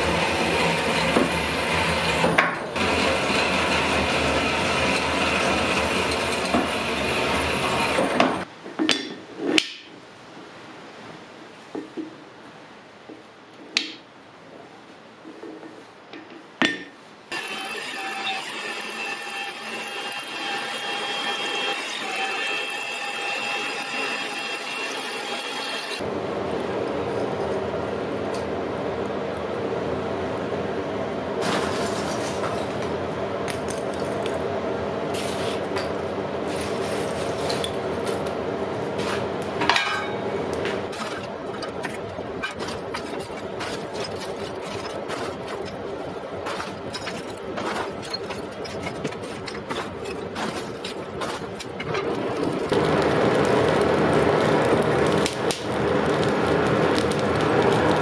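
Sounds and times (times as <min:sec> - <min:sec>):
machine hum: 0:00.0 - 0:08.5, 0:17.3 - 0:58.0
charcoal lumps clinking and rattling: 0:38.9 - 0:58.0.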